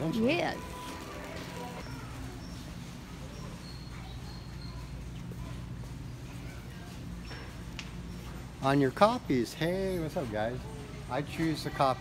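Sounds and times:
store interior hum: 0.0 - 12.0.

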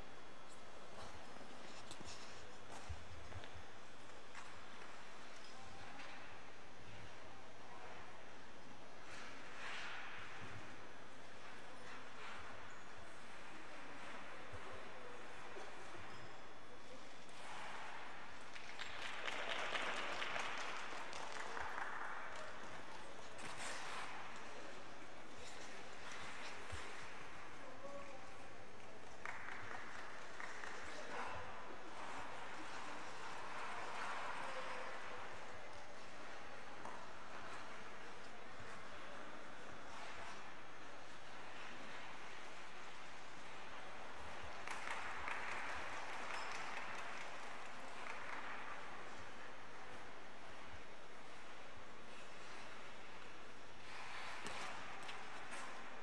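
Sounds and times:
audience applauding: 18.5 - 22.6
spectators clapping: 18.5 - 23.0, 29.0 - 31.2, 44.4 - 49.2.

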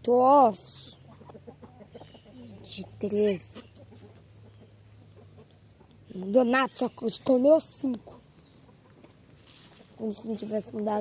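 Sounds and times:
chickens clucking: 0.1 - 11.0.

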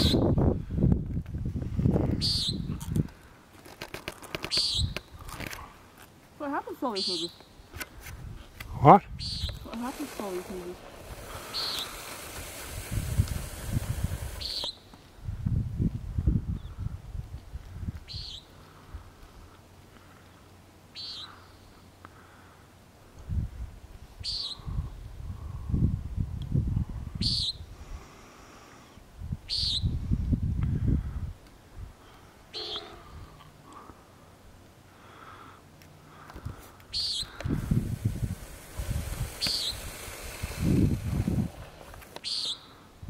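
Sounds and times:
buzzy nasal bird calls: 2.2 - 2.7, 4.5 - 5.0, 6.8 - 7.4, 9.2 - 12.8, 14.1 - 14.9, 20.9 - 21.7, 32.5 - 33.1, 36.9 - 40.9, 42.2 - 42.8.

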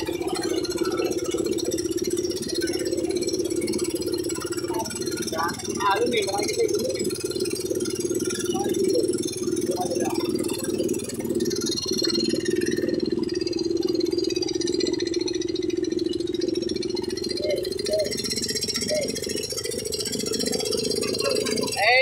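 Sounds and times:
engine droning: 0.0 - 22.0.

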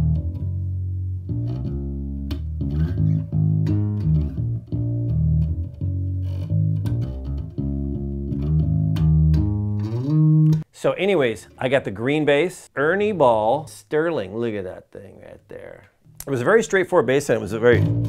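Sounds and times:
electric bass riff: 0.0 - 10.6, 17.6 - 18.0.

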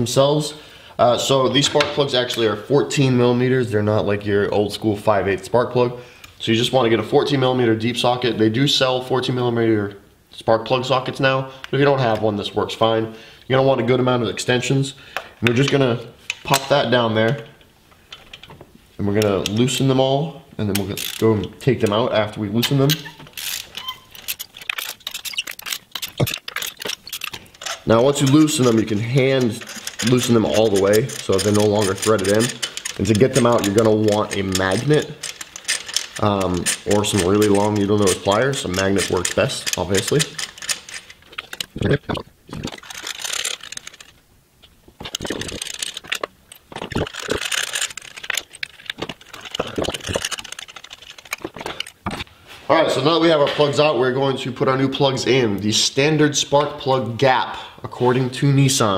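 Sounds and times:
socket ratchet clicking: 20.8 - 21.3, 22.9 - 41.8, 42.6 - 44.2, 45.0 - 52.0.

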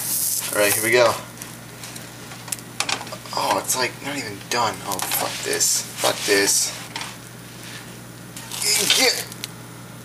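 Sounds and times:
batter sizzling in a frying pan: 0.0 - 1.1.

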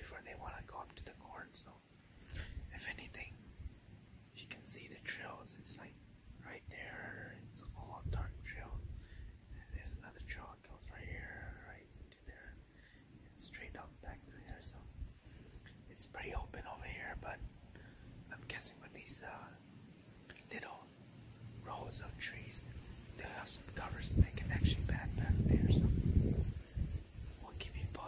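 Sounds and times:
person whispering: 0.0 - 3.4, 4.3 - 12.6, 13.3 - 15.0, 15.8 - 17.5, 18.3 - 19.6, 20.2 - 20.9, 21.6 - 26.0, 27.4 - 28.0.

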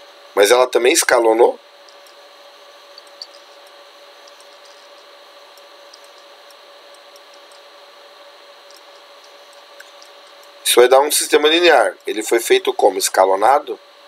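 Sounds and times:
faint constant tones: 0.0 - 14.0
low steady hiss: 0.3 - 14.0
faint ticks: 3.0 - 7.7, 8.6 - 10.6.

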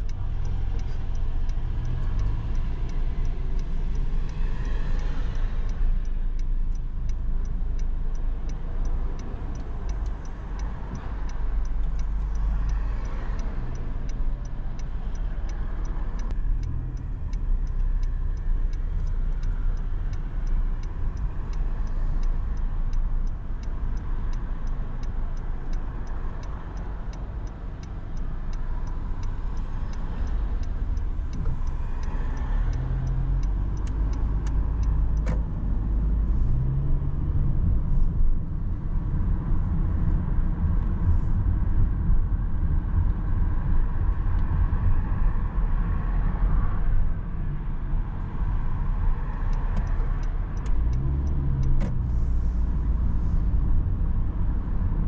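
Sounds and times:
light even ticking: 0.0 - 42.7, 48.2 - 55.0
car road and engine rumble: 0.0 - 55.0.

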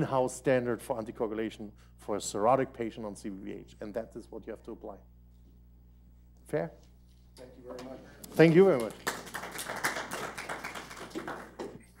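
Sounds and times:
audience applause: 8.4 - 12.0.

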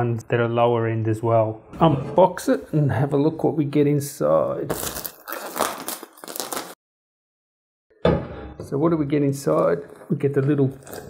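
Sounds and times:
plastic shrink-wrap crinkling: 4.7 - 6.8.

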